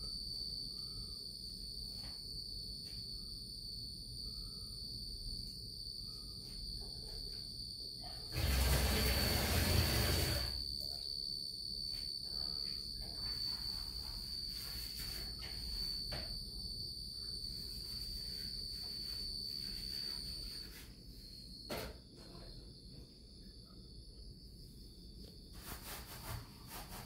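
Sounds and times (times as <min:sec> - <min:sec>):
crickets trilling: 0:00.0 - 0:27.0.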